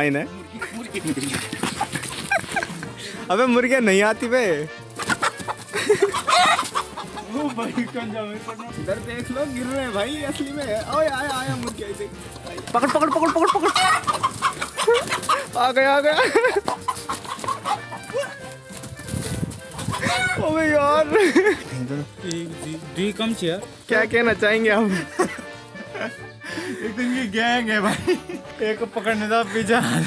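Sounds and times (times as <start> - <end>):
background music: 0.0 - 30.0
chickens clucking: 0.5 - 3.2, 4.9 - 26.4
chicken squawk: 5.0 - 10.9, 12.4 - 15.6, 16.2 - 20.6.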